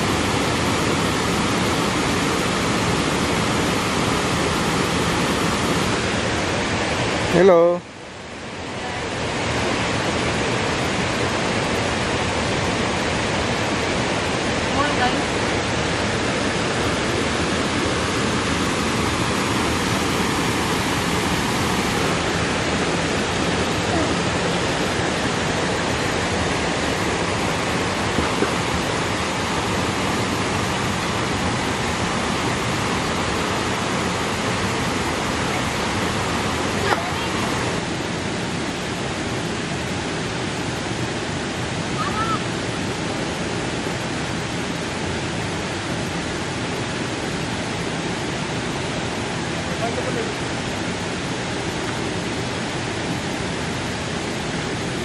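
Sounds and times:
stream flowing over rocks: 0:00.0 - 0:55.0.

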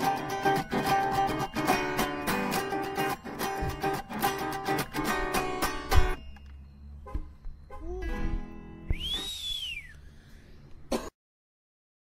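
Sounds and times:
rising and falling whistle: 0:08.8 - 0:10.0.

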